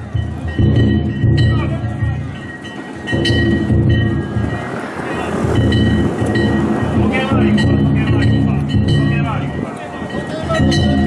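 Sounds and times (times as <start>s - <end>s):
metal hand gongs ringing: 0.0s - 11.0s
taiko drum beating: 0.0s - 11.0s.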